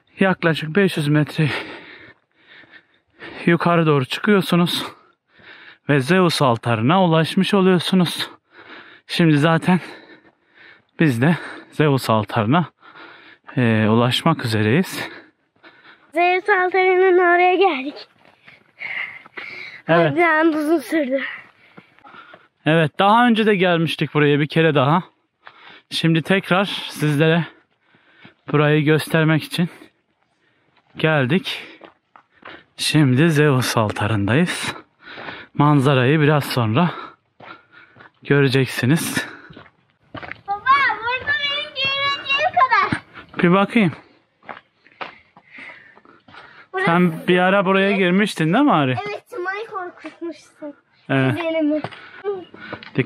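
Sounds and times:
soft footsteps on stone steps: 14.6 - 22.7, 25.2 - 53.0
short breathy noises: 18.2 - 19.9.

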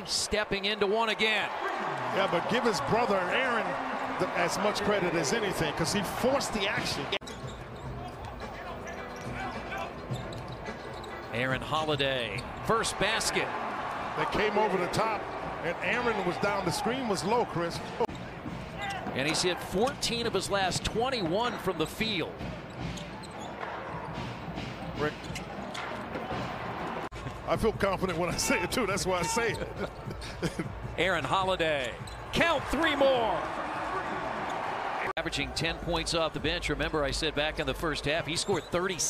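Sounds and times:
arena noise: 0.0 - 39.0.

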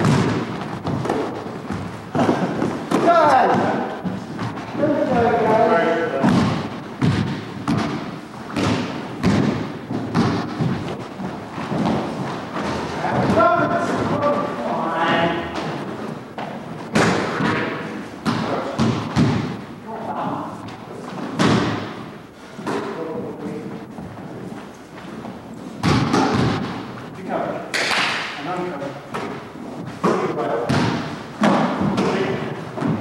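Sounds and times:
basketball bouncing on hardwood: 0.0 - 5.3, 6.2 - 14.1, 16.4 - 19.6, 25.8 - 26.8.

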